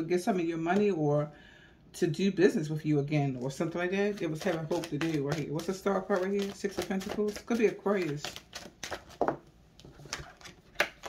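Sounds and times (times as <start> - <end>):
cards snapping and tapping: 10.1 - 11.0.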